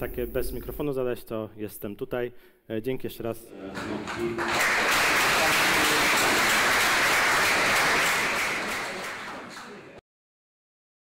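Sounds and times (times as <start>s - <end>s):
audience applauding: 3.6s - 10.0s.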